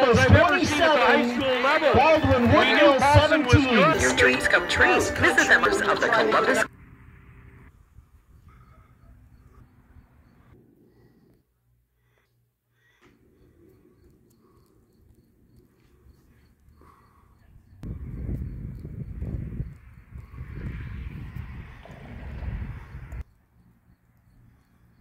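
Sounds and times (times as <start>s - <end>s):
wind buffeting microphone: 17.6s - 23.3s.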